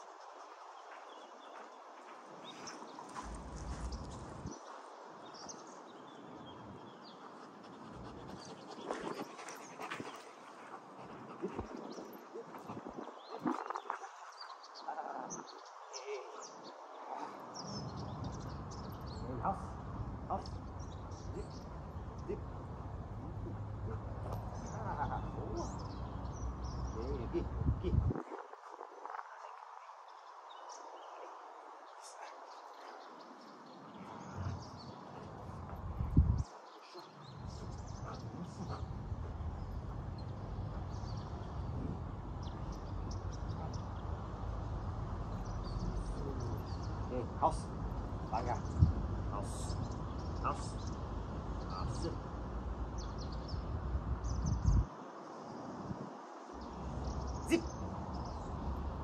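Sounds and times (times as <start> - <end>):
wind rumble on microphone: 2.5 - 4.7, 11.0 - 16.2, 17.6 - 29.6, 34.2 - 59.0.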